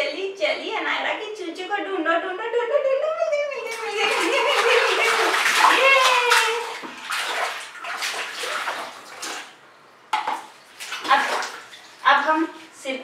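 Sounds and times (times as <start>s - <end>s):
hands splashing water in tub: 3.6s - 9.6s, 10.2s - 12.8s.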